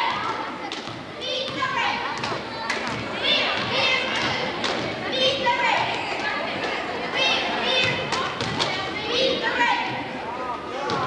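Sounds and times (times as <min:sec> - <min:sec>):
girls shouting: 0:00.0 - 0:00.6, 0:01.2 - 0:10.1.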